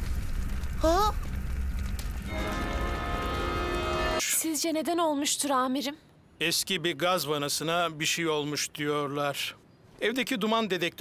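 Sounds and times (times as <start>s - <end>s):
fire crackling rumble: 0.0s - 4.2s.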